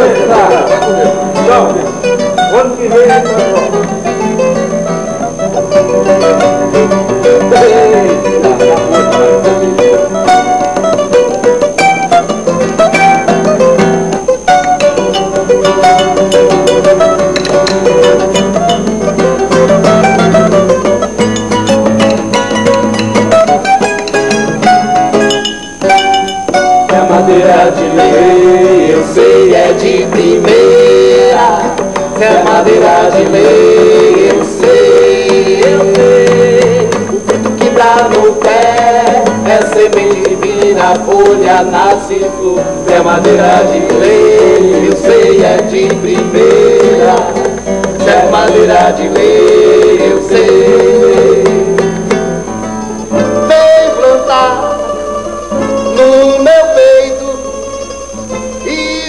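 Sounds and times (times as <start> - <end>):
mandolin-type plucked strings: 0.0 - 56.5
nylon-string guitar: 0.0 - 59.0.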